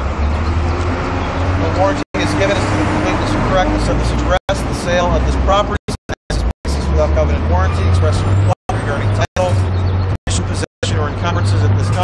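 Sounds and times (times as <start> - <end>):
man speaking: 1.6 - 9.7, 10.3 - 12.0.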